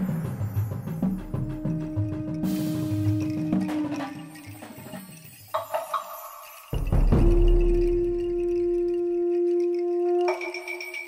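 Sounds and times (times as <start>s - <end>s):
bright chiming music: 0.0s - 11.0s.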